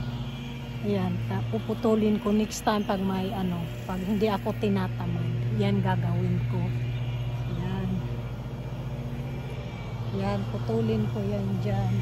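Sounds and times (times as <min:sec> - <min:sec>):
lawn mower engine humming: 0:00.0 - 0:12.0.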